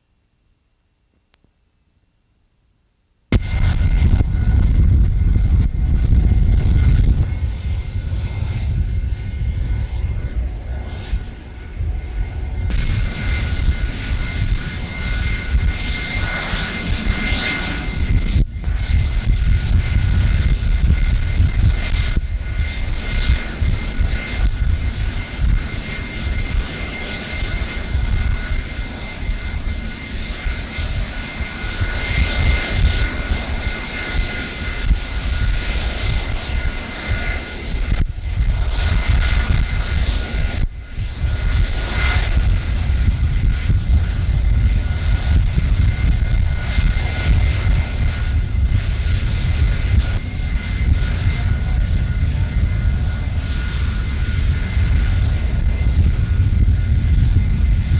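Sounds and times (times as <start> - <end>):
jet engines roaring at takeoff: 3.3 - 57.9
wind rumbling on microphone: 3.3 - 57.9.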